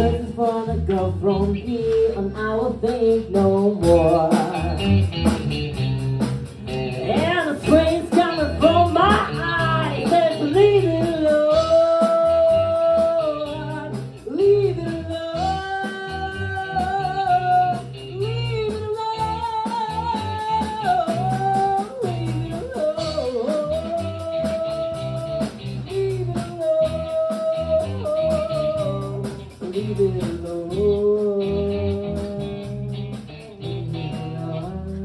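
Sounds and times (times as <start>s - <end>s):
man singing into microphone: 0.0s - 5.0s, 7.0s - 33.0s, 33.6s - 35.0s
drum kit: 0.0s - 35.0s
electric guitar: 0.0s - 35.0s.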